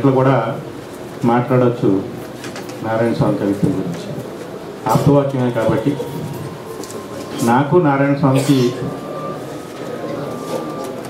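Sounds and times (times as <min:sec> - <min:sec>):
man speaking into a microphone: 0:00.0 - 0:02.2, 0:02.8 - 0:06.4, 0:07.3 - 0:09.0.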